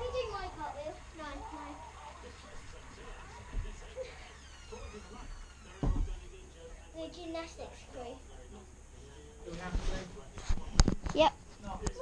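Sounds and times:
small thump: 5.7s - 6.2s
dull thud of landing: 5.7s - 6.3s.

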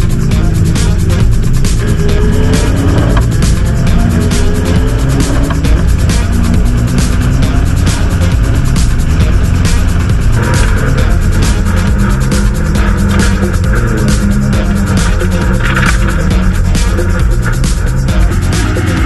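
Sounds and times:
electronic music with steady beat: 0.0s - 19.0s
race car engine revving: 0.0s - 19.0s.

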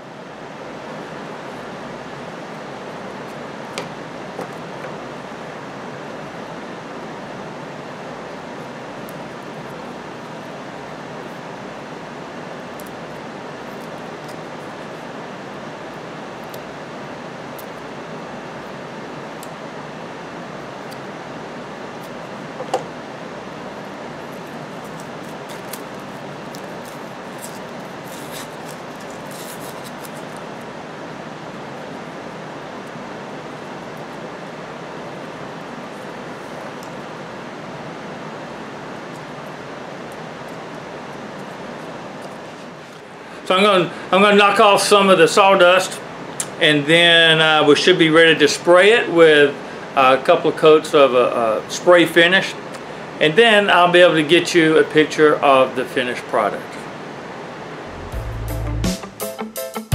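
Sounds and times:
tape and wood crackling: 24.2s - 30.6s.

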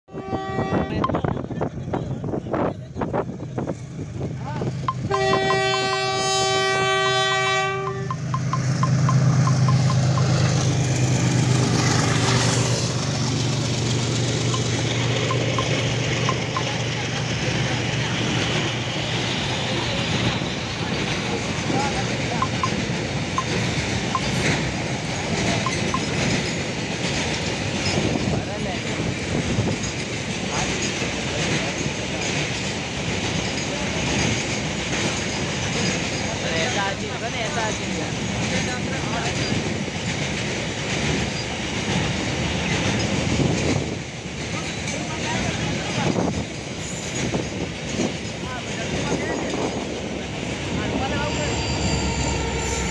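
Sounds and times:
locomotive horn: 0.1s - 1.2s, 5.0s - 8.3s, 51.3s - 52.9s
freight train rolling past: 0.1s - 52.9s
wheels clacking over rail joints: 4.6s - 52.9s.

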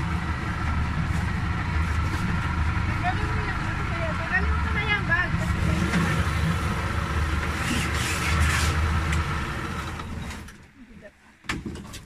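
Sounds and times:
boat motor throbbing: 0.0s - 10.5s.

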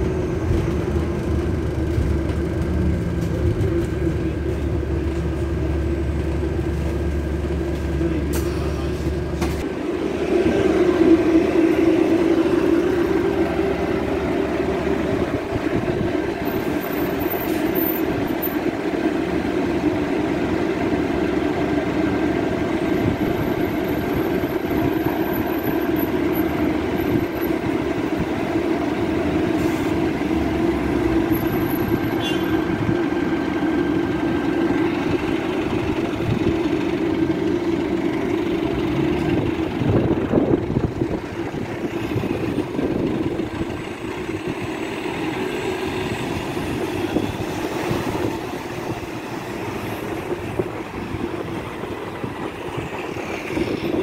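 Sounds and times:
bus engine idling: 0.0s - 54.0s.

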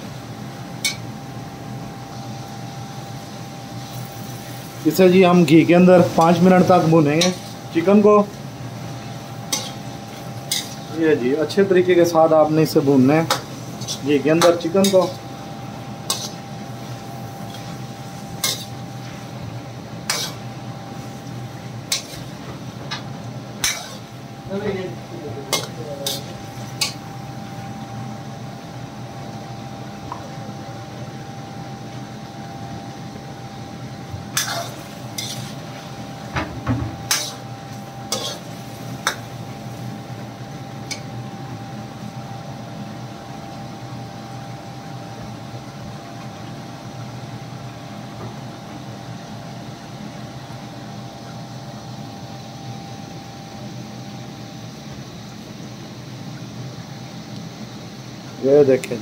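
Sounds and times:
frying hiss: 0.0s - 59.0s
spoon scraping a pan: 9.5s - 10.9s, 16.1s - 16.5s, 17.4s - 18.9s, 20.0s - 20.5s, 21.9s - 23.0s, 23.6s - 24.2s, 25.5s - 27.0s, 34.4s - 35.7s, 37.0s - 37.5s, 38.1s - 39.3s.

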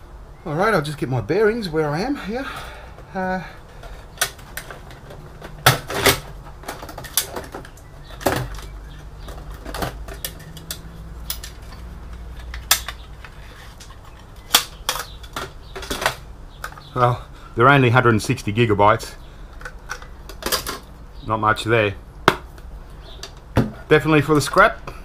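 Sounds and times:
plastic and metal clicks and knocks: 4.1s - 16.9s.

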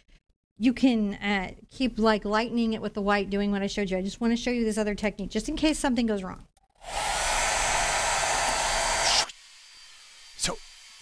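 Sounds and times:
hair dryer blowing: 6.8s - 11.0s.

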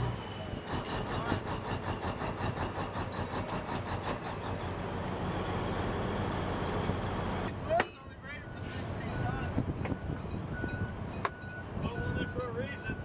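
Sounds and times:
diesel engine rumbling: 0.0s - 13.0s
rapid engine clatter: 0.7s - 4.8s.

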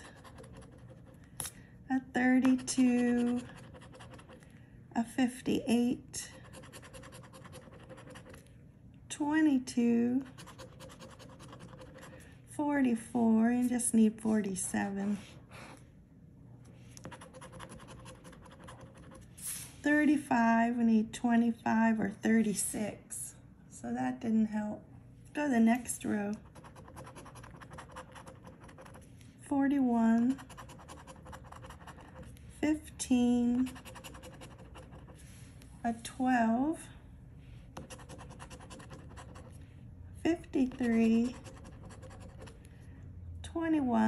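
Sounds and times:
coin scratching lottery ticket: 33.6s - 35.0s.

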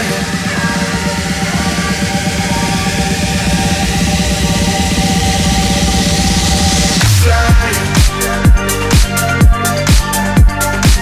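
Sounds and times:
electronic music with fast beat: 0.0s - 11.0s.

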